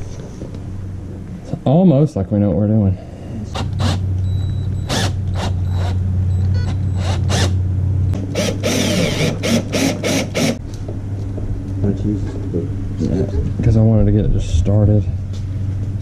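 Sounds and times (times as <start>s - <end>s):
steady low hum: 0.0s - 16.0s.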